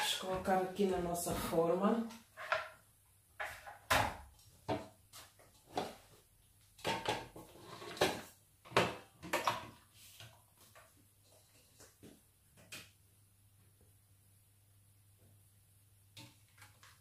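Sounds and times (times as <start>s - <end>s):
kitchen items knocking and clattering: 3.4s - 6.1s, 6.8s - 9.8s.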